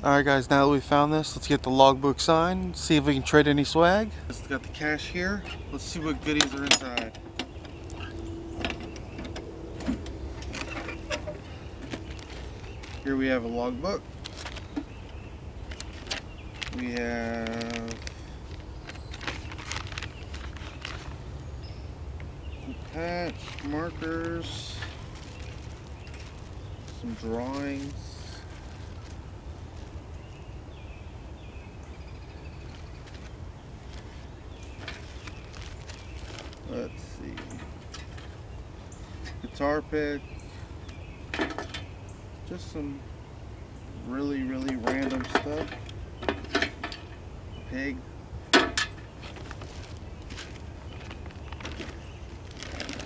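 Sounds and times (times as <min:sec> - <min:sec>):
low outdoor rumble: 0:00.0 - 0:53.0
papers rustling: 0:04.4 - 0:21.4, 0:22.6 - 0:30.2, 0:32.6 - 0:38.4, 0:48.9 - 0:53.0
metal can latch clicks and knocks: 0:44.6 - 0:47.1.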